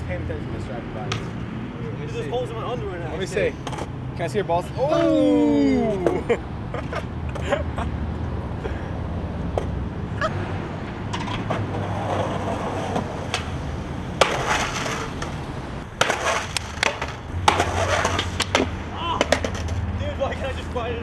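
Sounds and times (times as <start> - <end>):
skateboard rolling on asphalt: 10.6 - 19.9
rider sliding on pavement: 10.8 - 20.8
skateboard clattering: 11.1 - 15.4, 16.0 - 19.8.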